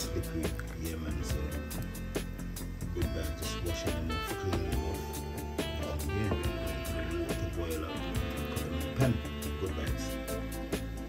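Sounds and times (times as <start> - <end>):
background music with a beat: 0.0 - 11.0.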